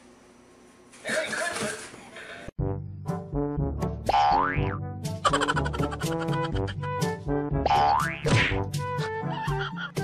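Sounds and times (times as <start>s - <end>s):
playful background music: 2.6s - 10.0s
cartoon boing sound effect: 4.1s - 4.8s, 7.7s - 8.6s.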